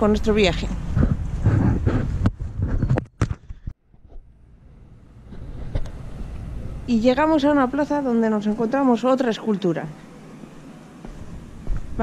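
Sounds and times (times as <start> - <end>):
wind on microphone: 0.0 - 3.2
outdoor background noise: 0.0 - 12.0.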